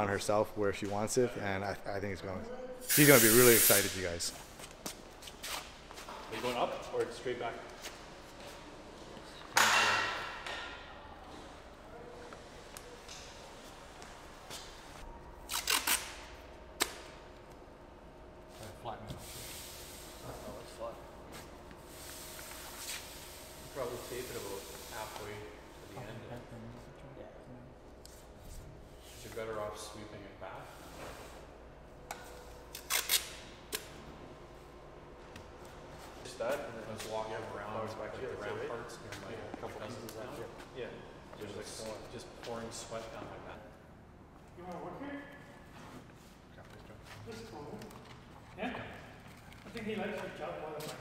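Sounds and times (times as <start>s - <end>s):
low room hum: 0.0s - 51.0s
masking tape ripping off roll: 15.4s - 17.0s, 32.7s - 33.9s
tape strip tearing: 15.4s - 17.1s, 32.7s - 33.9s.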